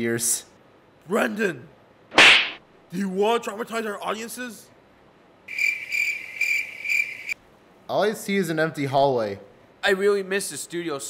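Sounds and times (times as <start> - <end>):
cricket chirping: 5.5 - 7.4.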